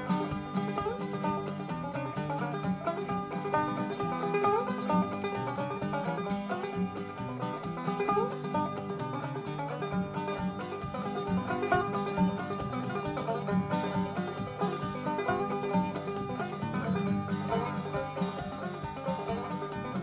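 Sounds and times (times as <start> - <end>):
acoustic guitar bass rhythm: 0.0 - 20.0
banjo clawhammer picking: 0.0 - 20.0.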